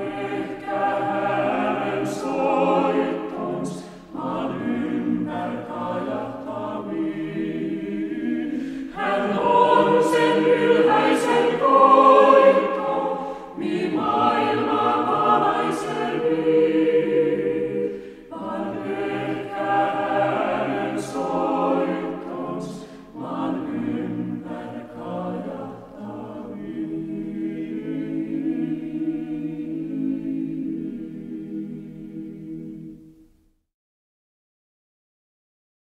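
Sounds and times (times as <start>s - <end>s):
choir singing: 0.0s - 33.3s.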